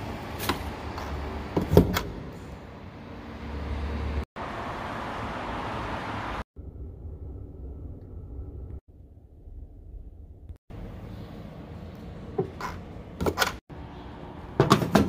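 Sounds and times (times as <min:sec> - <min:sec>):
low rumble: 0:06.6 - 0:10.6.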